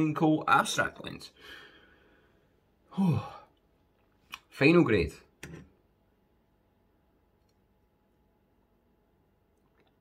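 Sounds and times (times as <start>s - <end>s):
man sighing: 2.8s - 3.6s.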